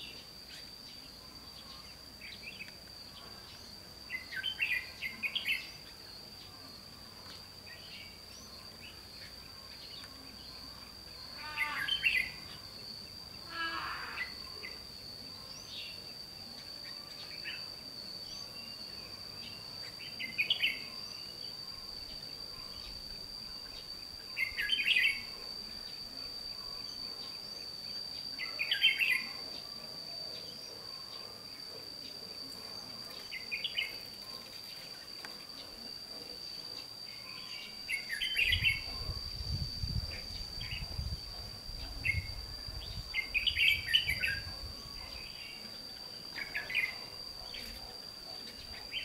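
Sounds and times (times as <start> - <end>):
high-pitched insect drone: 0.0 - 49.0.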